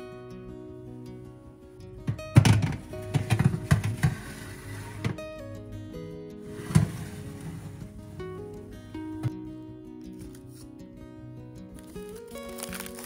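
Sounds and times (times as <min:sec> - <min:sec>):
guitar music: 0:00.0 - 0:13.0
baking tray knocking on oven rack: 0:02.1 - 0:04.2.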